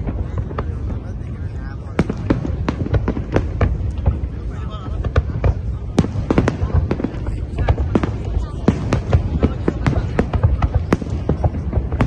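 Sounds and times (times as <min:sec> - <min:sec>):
fireworks cracking: 0:00.0 - 0:12.0
low rumble of booms: 0:00.0 - 0:12.0.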